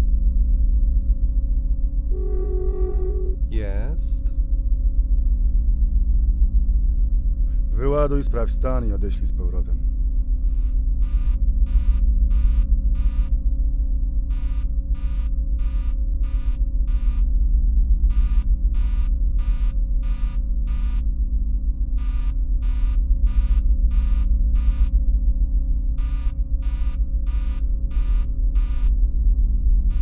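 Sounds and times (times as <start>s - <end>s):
steady low hum: 0.0s - 30.0s
electronic alarm beeps: 11.0s - 13.3s, 14.3s - 17.2s, 18.1s - 21.0s, 26.0s - 28.9s.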